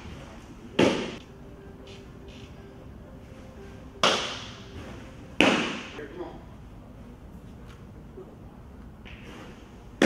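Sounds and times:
baseball smacking into glove: 5.4 - 5.9.

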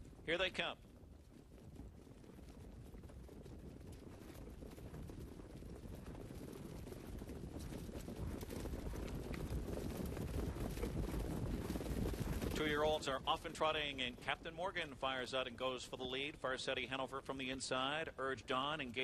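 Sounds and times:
trotting hoofbeats: 0.0 - 19.0.

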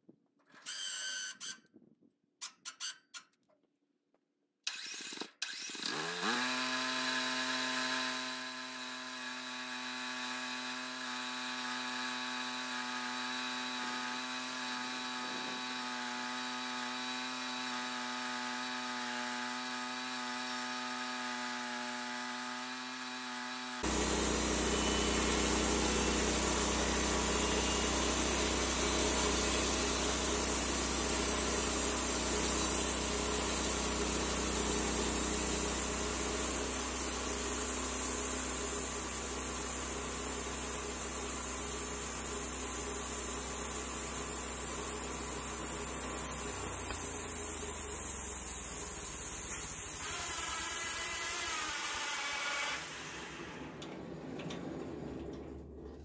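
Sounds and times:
band saw cutting log: 4.7 - 53.9
small gasoline engine humming: 23.8 - 50.0.

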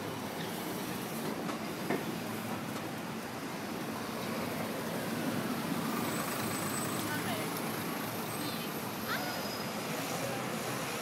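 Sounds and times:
bus driving past: 0.0 - 11.0
street traffic: 0.0 - 11.0.

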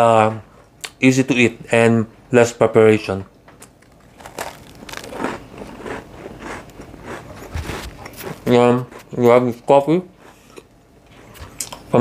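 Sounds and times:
man chewing dry rusk: 3.6 - 9.2.

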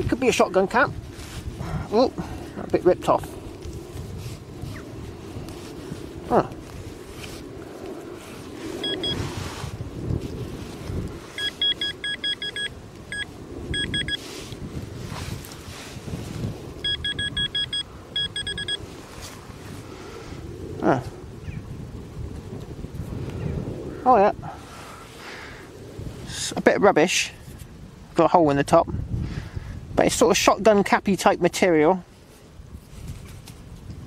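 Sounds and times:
pinpointer short high beeps: 8.8 - 9.2, 11.4 - 14.2, 16.8 - 18.8.

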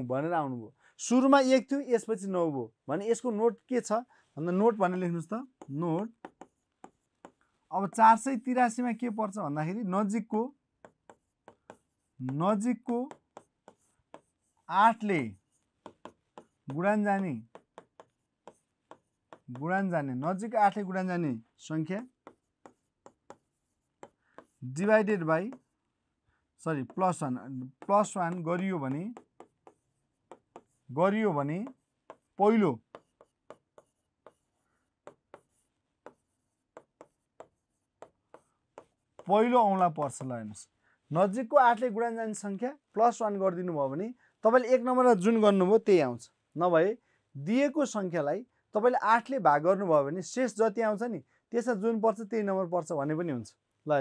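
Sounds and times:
pen ticking on a board: 5.4 - 8.1, 10.8 - 19.9, 21.9 - 25.7, 26.8 - 40.4.

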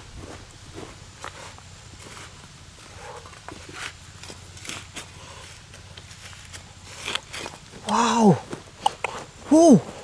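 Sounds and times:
trowel scraping stony soil: 3.3 - 7.9.

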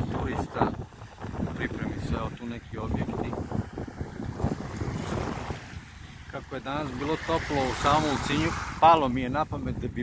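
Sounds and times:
small waves lapping on shore: 0.0 - 10.0
wind buffeting microphone: 0.0 - 10.0.

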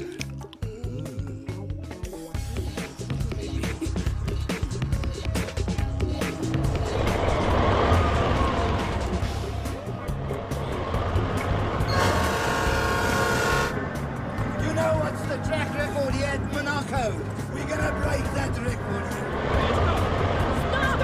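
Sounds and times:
background music: 0.0 - 21.0
vehicle noise: 2.4 - 21.0
engine-like sweep: 2.9 - 21.0.

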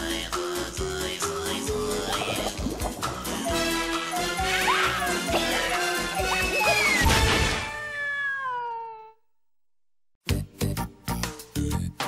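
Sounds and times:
cartoon cat meow: 4.4 - 9.2.

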